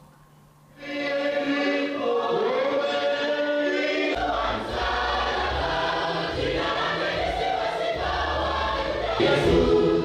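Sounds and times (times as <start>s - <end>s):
choir singing gospel: 0.7s - 10.0s.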